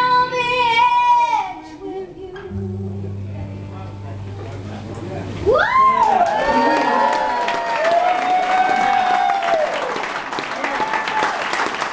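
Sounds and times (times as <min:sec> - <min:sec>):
long held whoop: 0:05.5 - 0:10.0, 0:10.7 - 0:11.5
audience applauding and cheering: 0:05.5 - 0:11.9.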